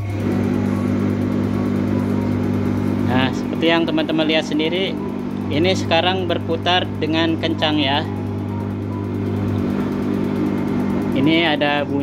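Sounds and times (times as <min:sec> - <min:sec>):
tumble dryer motor humming: 0:00.0 - 0:12.0.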